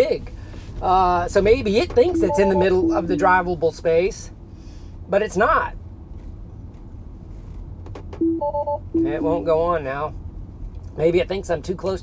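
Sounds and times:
road rumble in car cabin: 0:00.0 - 0:12.0
dashboard warning chimes: 0:02.0 - 0:03.4, 0:08.2 - 0:09.4.

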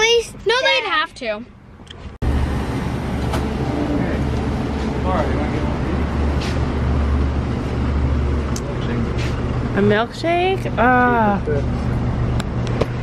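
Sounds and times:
low hum of coolers: 0:01.2 - 0:13.0.

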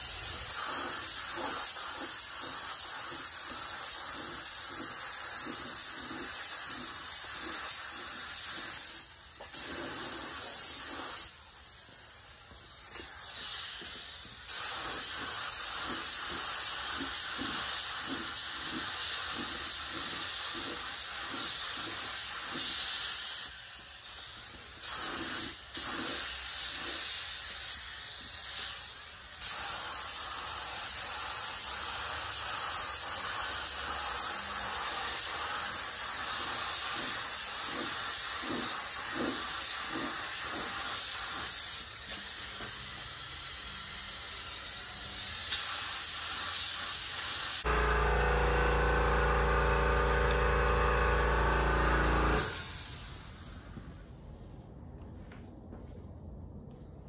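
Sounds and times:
paint spray gun hissing: 0:00.0 - 0:53.7.

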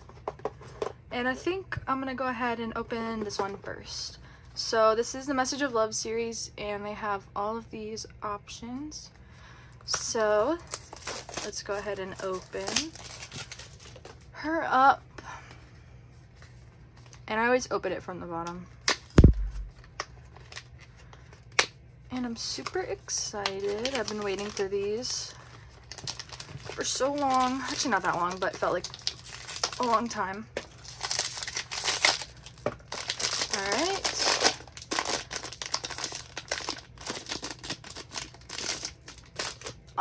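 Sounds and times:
foil bag crinkling: 0:10.3 - 0:14.3, 0:22.4 - 0:40.0.

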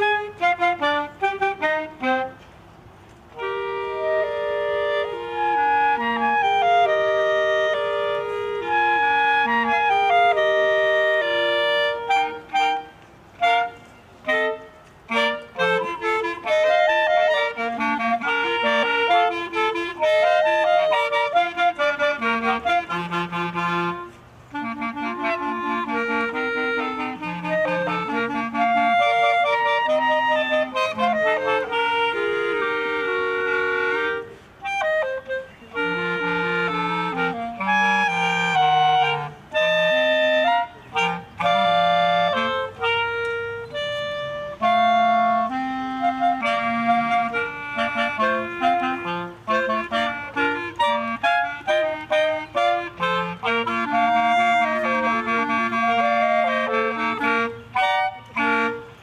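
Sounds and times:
clarinet melody: 0:00.0 - 0:59.0
wind band playing: 0:00.0 - 0:59.0.

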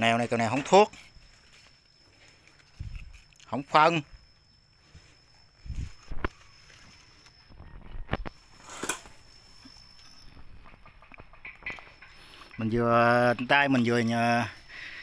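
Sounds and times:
leaves rustling: 0:00.0 - 0:07.6.

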